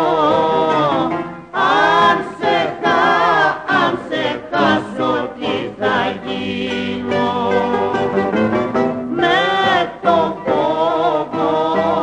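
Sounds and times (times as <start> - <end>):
instrumental accompaniment: 0.0 - 12.0
voices singing: 0.0 - 12.0.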